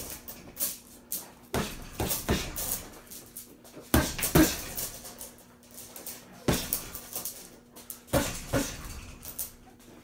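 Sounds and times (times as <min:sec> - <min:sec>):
punches hitting heavy bag: 0:01.5 - 0:02.9, 0:03.9 - 0:04.9, 0:06.5 - 0:07.0, 0:08.1 - 0:08.9.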